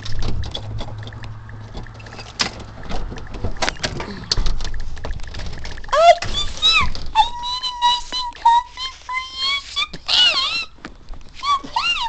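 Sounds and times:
dog whining: 0:05.9 - 0:10.8, 0:11.4 - 0:12.0.

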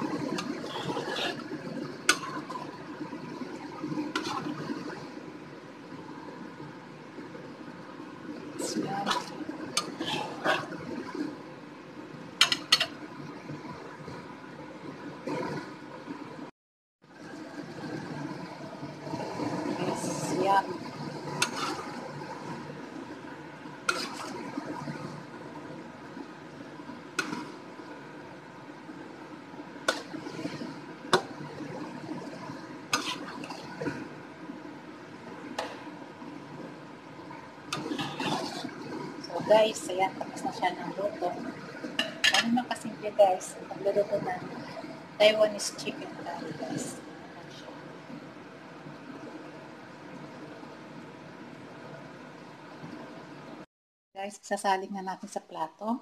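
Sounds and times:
curry bubbling in a pot: 0:00.0 - 0:14.4, 0:17.0 - 0:48.2.

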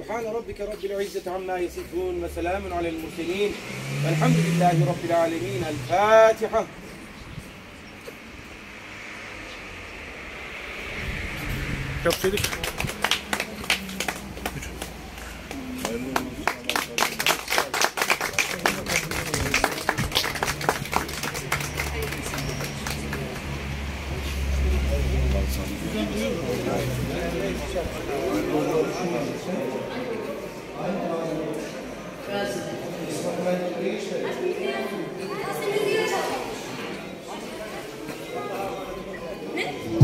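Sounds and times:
vehicle low rumble: 0:01.3 - 0:16.8, 0:18.5 - 0:28.6
people clapping: 0:12.0 - 0:24.1.

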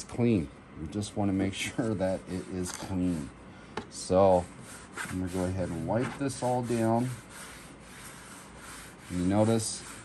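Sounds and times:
cloth rag wiping plastic track: 0:01.6 - 0:03.3, 0:03.9 - 0:10.0.

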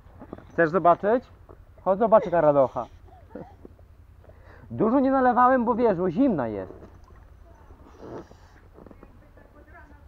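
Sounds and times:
faint voices: 0:06.8 - 0:10.0.

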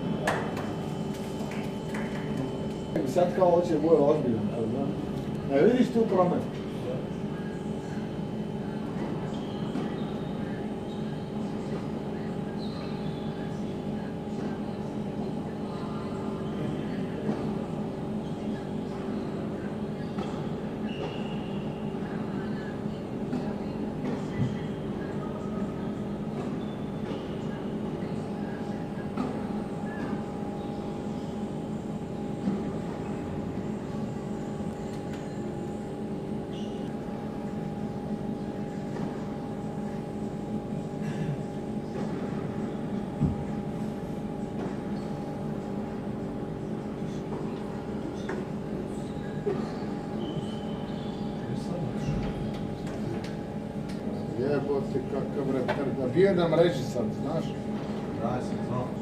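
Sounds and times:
mechanical hum: 0:00.0 - 0:59.0.

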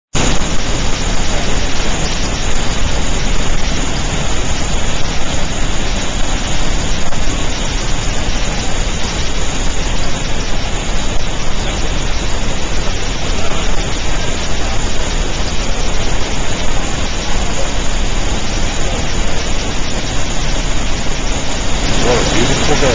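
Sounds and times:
waterfall rushing: 0:00.2 - 0:22.9.

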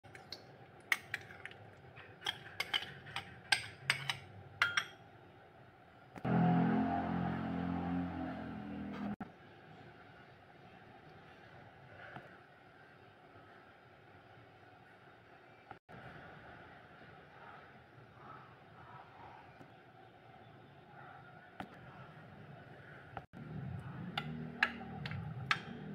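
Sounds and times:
spoon clinking on ceramic bowl: 0:02.2 - 0:05.0
low drone: 0:06.2 - 0:09.2.

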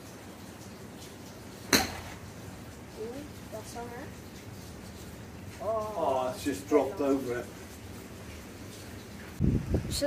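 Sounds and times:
outdoor background noise: 0:00.0 - 0:10.0
wind buffeting microphone: 0:09.4 - 0:10.0.

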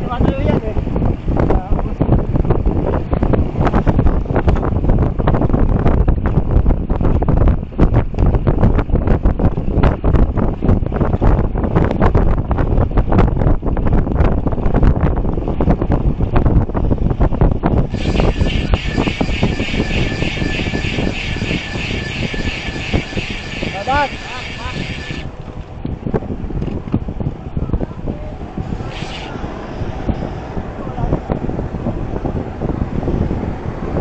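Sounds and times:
wind buffeting microphone: 0:00.0 - 0:34.0
road traffic: 0:17.0 - 0:34.0
bicycle freewheel ratcheting: 0:17.9 - 0:25.3, 0:28.7 - 0:29.4.

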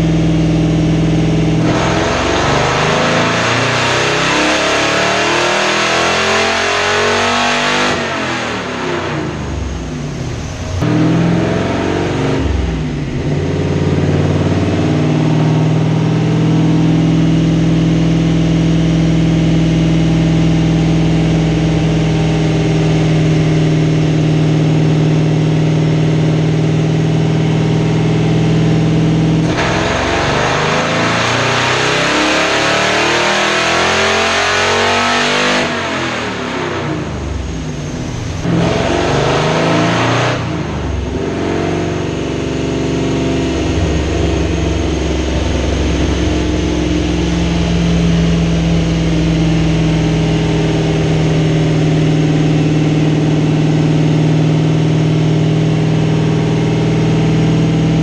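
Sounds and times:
car engine on dynamometer: 0:00.0 - 0:58.0.

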